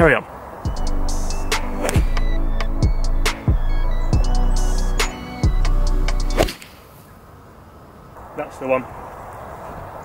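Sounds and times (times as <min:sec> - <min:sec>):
open-air background: 0:00.0 - 0:10.0
background music: 0:00.7 - 0:06.5
golf club striking ball: 0:01.6 - 0:02.3, 0:06.3 - 0:06.8.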